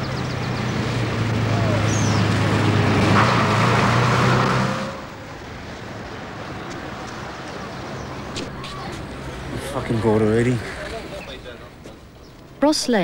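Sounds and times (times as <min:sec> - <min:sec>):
birds chirping: 0:00.0 - 0:03.5, 0:05.4 - 0:13.0
vehicle engine running: 0:00.0 - 0:11.1.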